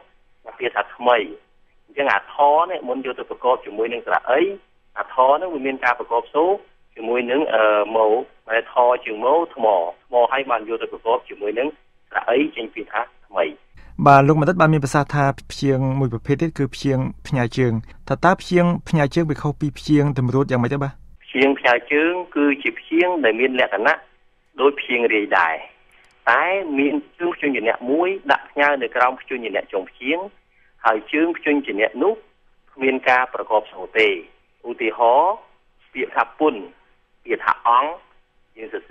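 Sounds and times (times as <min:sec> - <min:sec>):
person talking: 0:00.5 - 0:24.0, 0:24.6 - 0:30.3.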